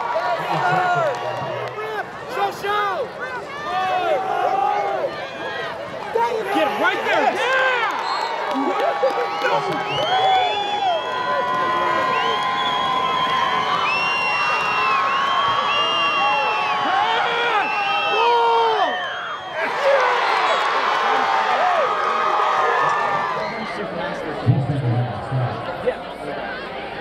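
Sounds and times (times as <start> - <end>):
crowd cheering and yelling: 0.0 - 27.0.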